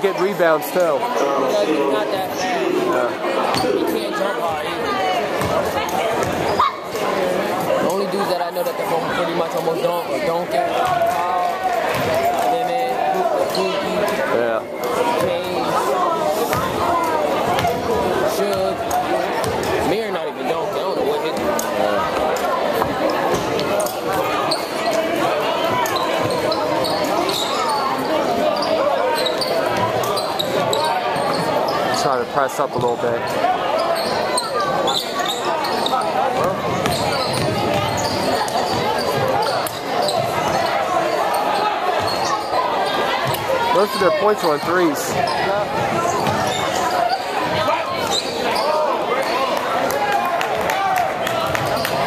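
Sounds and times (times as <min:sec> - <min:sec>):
spectators chattering: 0:00.0 - 0:52.0
sneakers squeaking: 0:01.2 - 0:52.0
basketball bouncing: 0:05.4 - 0:06.5, 0:11.9 - 0:12.2, 0:36.4 - 0:40.6.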